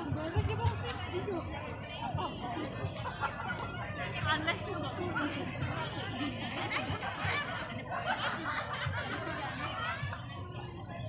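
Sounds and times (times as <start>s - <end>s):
chatter of people talking: 0.0s - 11.0s.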